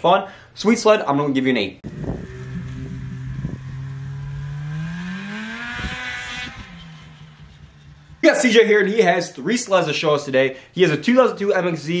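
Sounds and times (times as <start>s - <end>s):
snowmobile engine revving: 1.8s - 8.6s.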